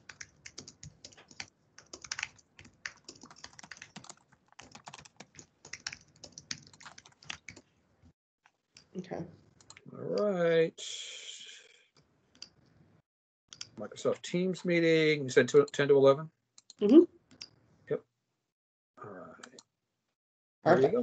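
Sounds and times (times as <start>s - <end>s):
typing on computer keyboard: 0.0s - 7.6s.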